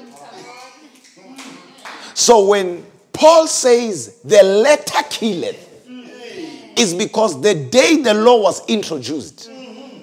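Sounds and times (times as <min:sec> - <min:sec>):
person preaching: 0:00.0 - 0:10.0.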